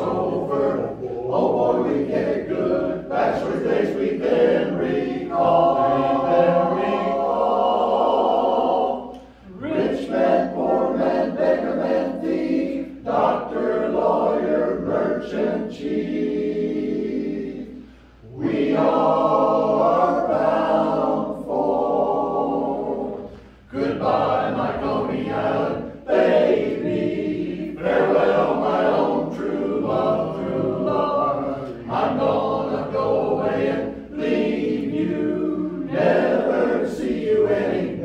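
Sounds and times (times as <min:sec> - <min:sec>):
men's barbershop chorus singing: 0:00.0 - 0:38.0.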